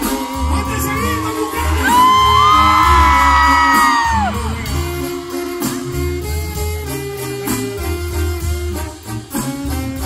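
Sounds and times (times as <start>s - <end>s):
band playing with tuba bass: 0.0s - 10.0s.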